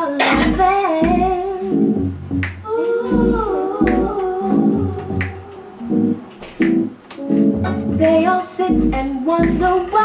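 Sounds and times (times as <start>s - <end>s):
person singing slow song: 0.0s - 6.3s
deep bass pulses: 0.4s - 6.9s, 7.6s - 9.9s
finger-snap hit: 2.4s - 2.6s, 3.8s - 4.2s, 5.2s - 5.4s, 6.6s - 6.9s, 9.4s - 9.8s.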